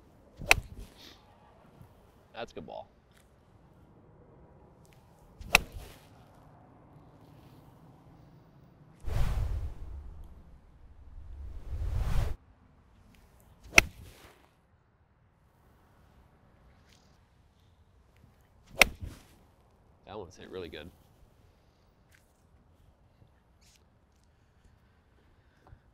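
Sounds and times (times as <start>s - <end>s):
golf club striking ball: 0.4s - 0.9s, 5.4s - 5.9s, 13.7s - 14.0s, 18.7s - 19.1s
swoosh effect: 9.0s - 12.4s.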